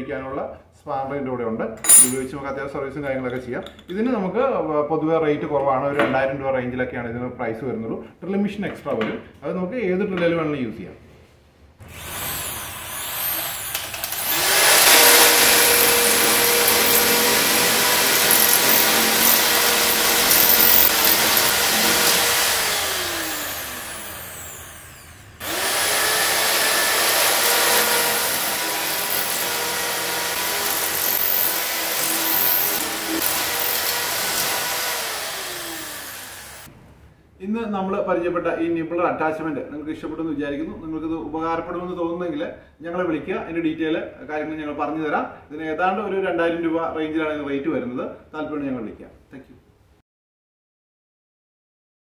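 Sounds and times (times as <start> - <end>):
electric drill nibbler cutting metal: 1.9 - 2.2, 11.8 - 36.7
drill motor winding down: 11.9 - 36.7.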